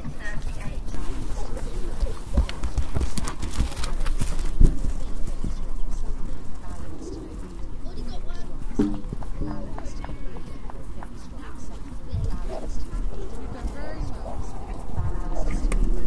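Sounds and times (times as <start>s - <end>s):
horse hooves knocking: 0.0s - 16.0s
low ambient rumble: 11.2s - 16.0s.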